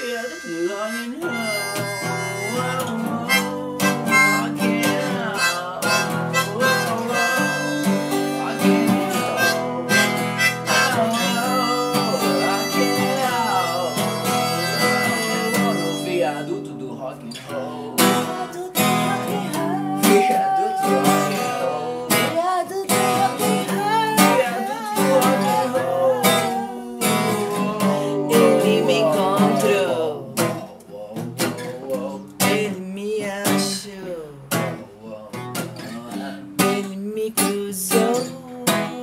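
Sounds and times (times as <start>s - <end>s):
acoustic guitar music: 0.0s - 39.0s.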